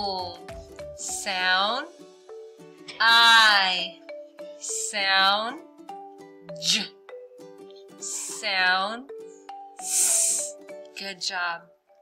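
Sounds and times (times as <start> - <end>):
background music sustained notes: 0.0 - 12.0
person hissing sss sound: 8.0 - 8.5, 9.8 - 10.6.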